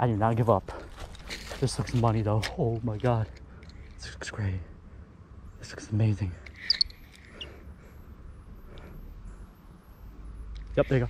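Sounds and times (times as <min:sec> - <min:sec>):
faint outdoor background: 0:00.0 - 0:11.0.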